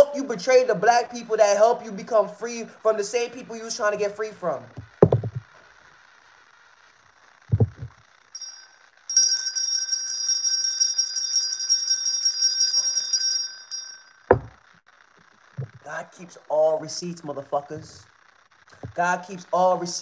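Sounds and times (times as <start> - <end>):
dull thumps: 4.7 - 5.5, 7.5 - 8.0, 14.3 - 14.6, 15.6 - 15.8, 18.7 - 19.0
hand bell ringing: 8.4 - 14.5.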